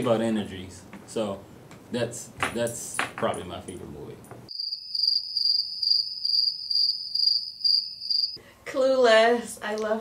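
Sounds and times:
crickets chirping: 0:04.5 - 0:08.4.

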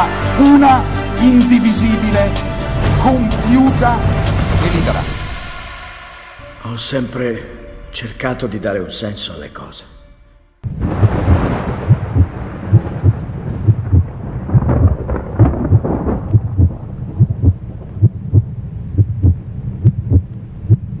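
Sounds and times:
deep rumble: 0:02.0 - 0:06.8, 0:10.2 - 0:21.0
low thuds: 0:10.6 - 0:21.0.

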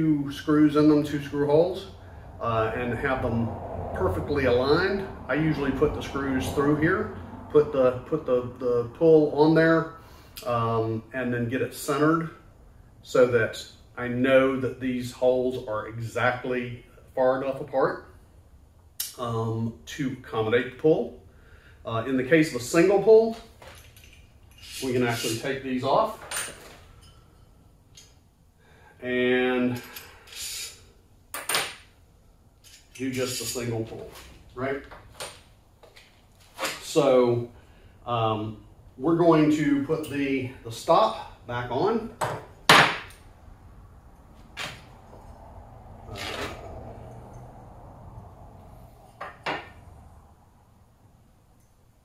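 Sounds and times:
metal parts clinking: 0:23.6 - 0:25.5, 0:26.2 - 0:28.2, 0:32.6 - 0:33.9
metal scraping: 0:23.9 - 0:28.1, 0:32.6 - 0:34.4, 0:46.0 - 0:47.4.

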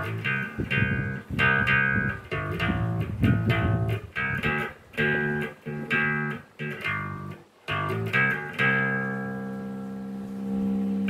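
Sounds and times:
overdriven electric bass note: 0:00.0 - 0:11.0.

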